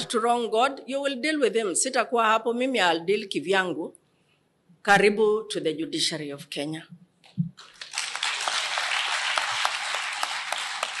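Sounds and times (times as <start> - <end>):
audience applauding: 7.6 - 11.0.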